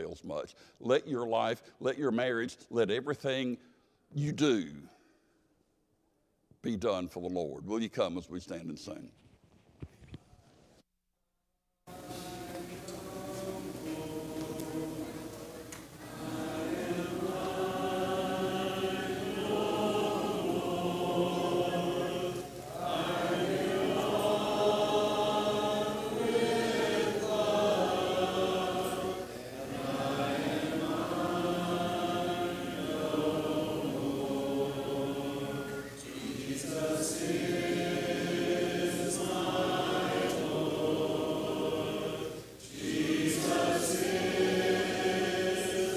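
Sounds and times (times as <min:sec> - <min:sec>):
congregation singing a hymn: 0:11.9 - 0:45.9.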